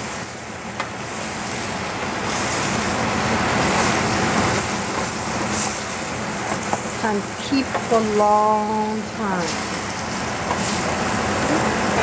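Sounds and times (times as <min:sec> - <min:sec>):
mushrooms sizzling in a frying pan: 0:00.0 - 0:12.0
wooden spatula stirring: 0:02.0 - 0:07.0, 0:09.5 - 0:11.1.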